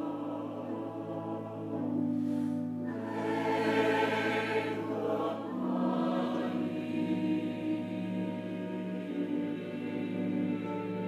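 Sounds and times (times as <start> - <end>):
church choir singing: 0.0 - 11.0.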